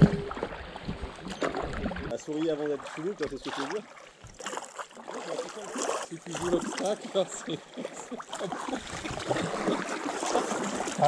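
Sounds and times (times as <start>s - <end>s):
soft paddle splashes: 0.0s - 11.0s
water lapping around a kayak: 0.0s - 11.0s.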